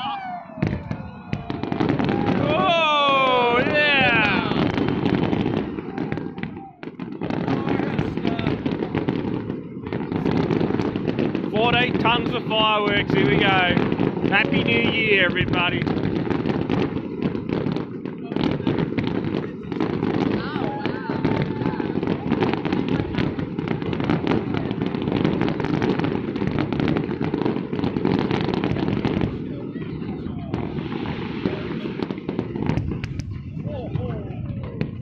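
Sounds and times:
crowd cheering and shouting: 0.0 - 9.2, 12.5 - 15.9, 19.8 - 23.2
fireworks bursting and crackling: 0.0 - 35.0.

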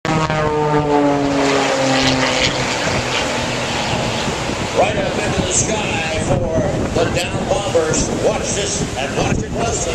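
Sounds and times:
propeller airplane engine drone: 0.0 - 9.9.

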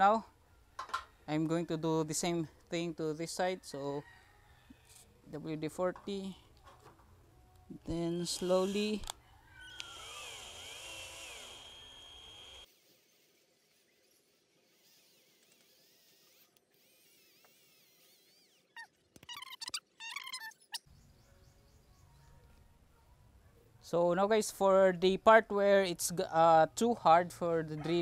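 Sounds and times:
cordless drill motor whine: 8.0 - 12.7.

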